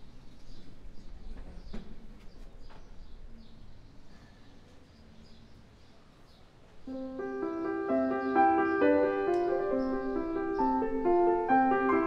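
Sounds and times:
faint bird chirps: 0.0 - 11.8
low background hush: 0.0 - 12.0
grand piano chord: 6.9 - 12.0.

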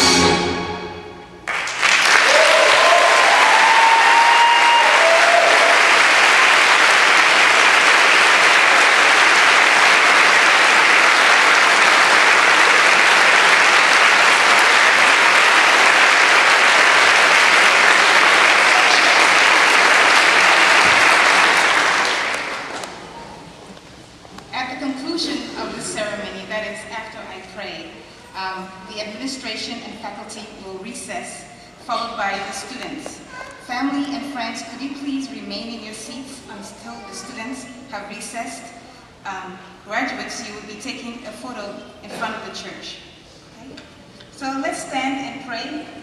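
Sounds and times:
large crowd applauding: 1.4 - 23.2
voices cheering: 2.1 - 23.5.

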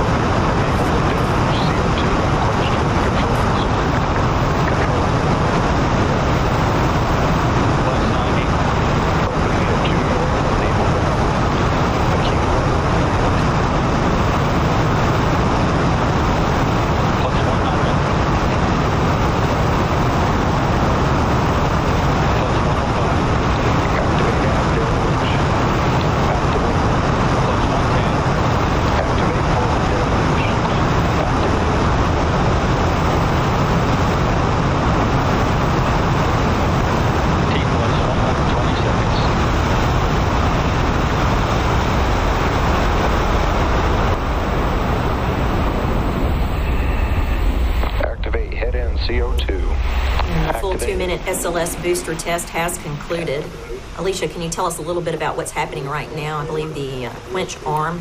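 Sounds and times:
rocket booster roaring with crackle: 0.0 - 57.4.

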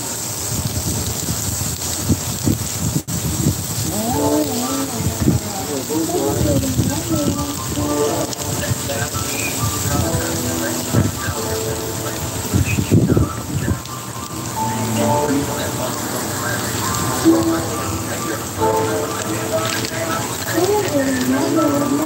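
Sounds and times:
sausages sizzling on a griddle: 0.0 - 22.0
rap song playing: 9.9 - 12.9.

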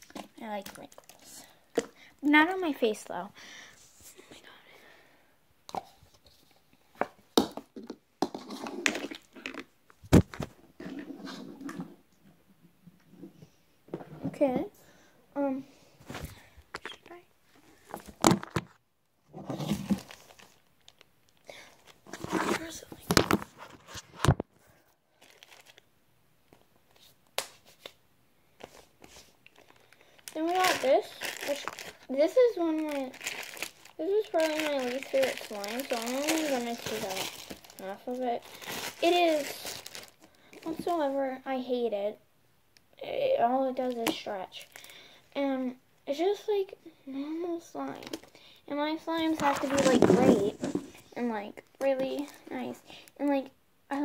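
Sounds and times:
hands handling things: 49.2 - 51.1.

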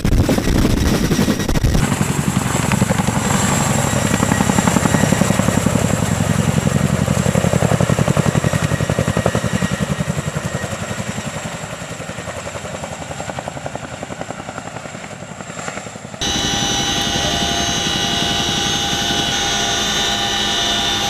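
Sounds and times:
helicopter rotors beating: 0.0 - 21.0.

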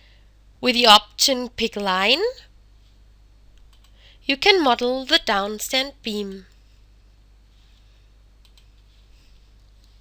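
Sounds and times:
low steady hum: 0.0 - 10.0
faint clicks: 3.5 - 4.0, 7.7 - 8.9.

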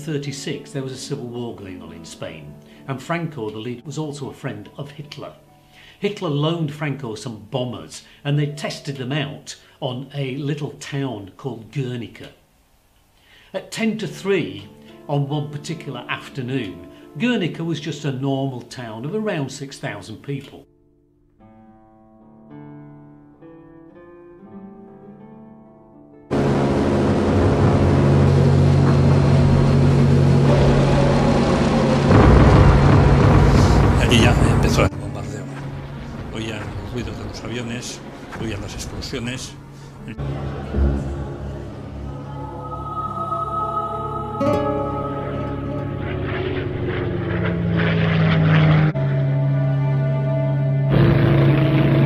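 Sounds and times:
bomber aircraft engines droning: 26.3 - 52.0
deep rumble: 26.3 - 52.0
soft plucked guitar notes: 40.1 - 46.8.

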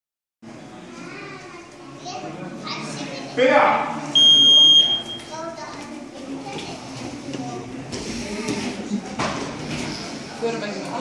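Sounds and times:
high-pitched electronic beep: 4.2 - 5.3.

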